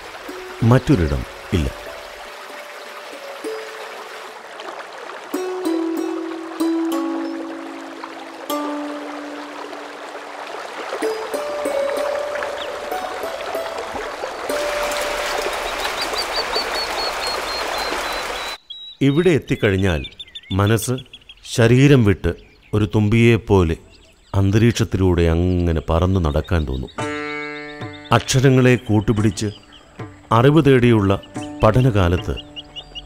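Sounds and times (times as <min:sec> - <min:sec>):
soft instrumental music: 0:00.0 - 0:16.3, 0:26.9 - 0:33.0
waterfall rushing water: 0:00.0 - 0:18.6
high chirps: 0:11.0 - 0:21.5.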